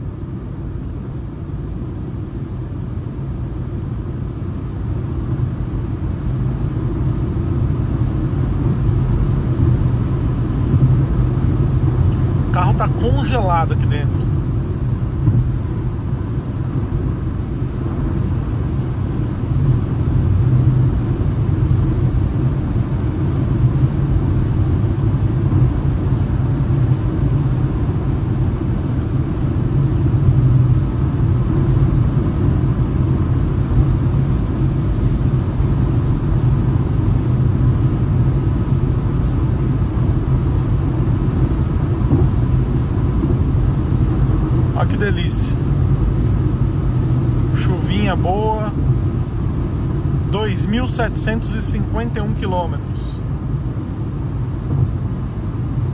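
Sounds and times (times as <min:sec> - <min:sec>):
car cabin road rumble: 0:09.6 - 0:15.9, 0:41.2 - 0:53.2.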